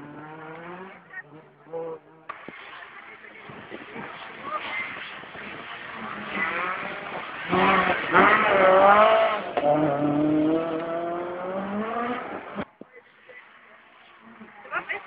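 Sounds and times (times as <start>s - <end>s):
car engine revving hard: 0.0s - 12.6s.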